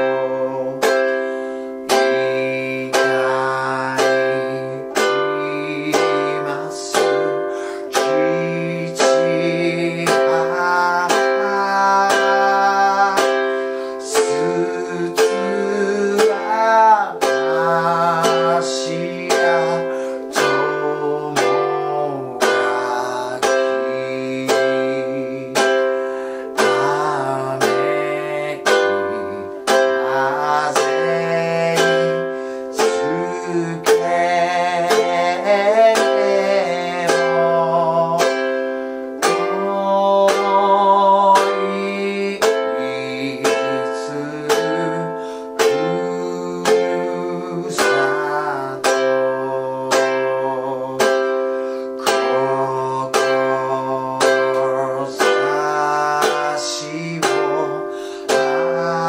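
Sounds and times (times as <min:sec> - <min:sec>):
man singing: 0:00.0 - 0:59.0
ukulele strumming: 0:00.0 - 0:59.0.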